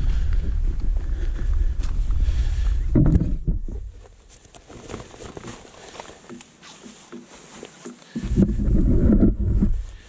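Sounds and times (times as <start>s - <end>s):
wind buffeting microphone: 0.0s - 4.0s, 8.2s - 10.0s.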